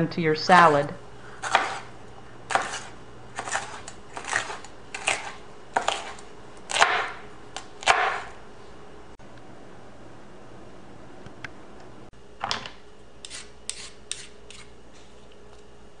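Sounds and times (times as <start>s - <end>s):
knife slicing pepper on board: 1.4s - 1.9s, 2.5s - 8.4s, 13.2s - 14.7s.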